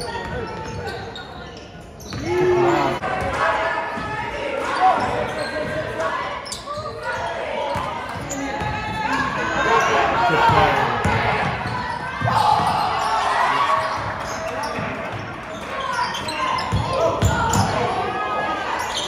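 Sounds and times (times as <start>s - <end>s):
voices echoing in gym: 0.0s - 19.0s.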